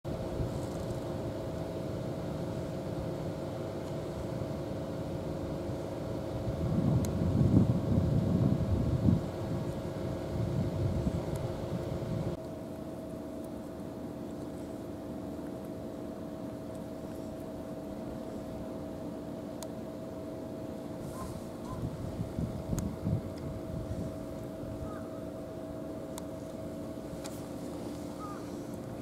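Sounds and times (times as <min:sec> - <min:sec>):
distant engine hum: 0:00.1 - 0:29.0.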